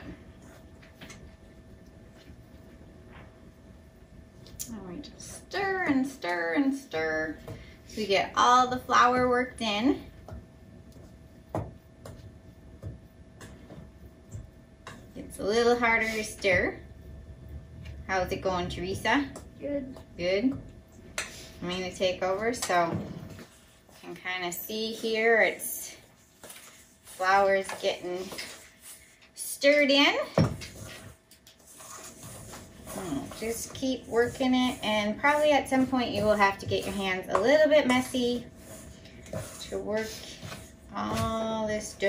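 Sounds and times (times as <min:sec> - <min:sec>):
spoon stirring dough in metal bowl: 0:18.1 - 0:42.0.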